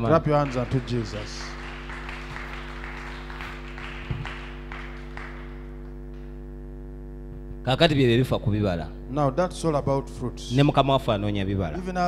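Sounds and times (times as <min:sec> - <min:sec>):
congregation clapping: 0:00.0 - 0:06.4
steady low hum: 0:00.0 - 0:12.0.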